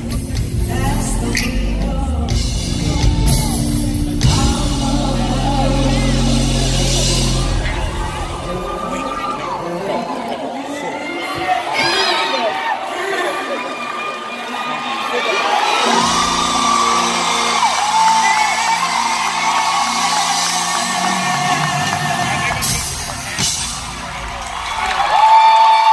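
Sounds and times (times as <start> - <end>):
woman singing: 0.2 - 7.6
crowd whooping and cheering: 2.9 - 25.9.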